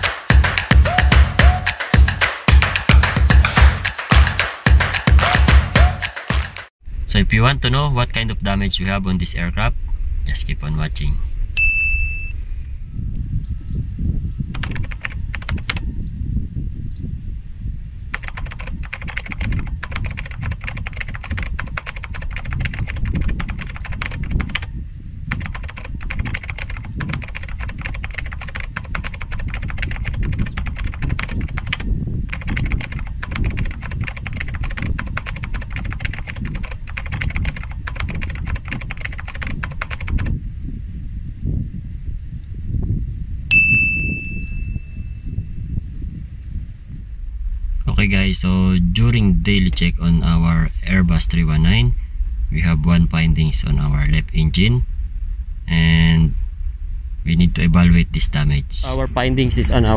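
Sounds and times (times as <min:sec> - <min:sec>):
low rumble: 0:06.8 - 0:14.6, 0:40.2 - 0:59.9
typewriter bell ding: 0:11.6 - 0:12.4, 0:43.5 - 0:45.0
typewriter keys clattering: 0:14.6 - 0:15.8, 0:18.2 - 0:24.7, 0:25.3 - 0:40.3.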